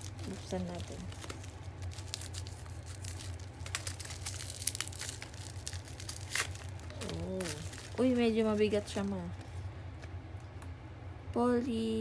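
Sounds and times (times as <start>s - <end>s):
scissors cutting plastic: 0.0s - 8.2s
plastic wrapping crinkling and tearing: 0.0s - 9.5s.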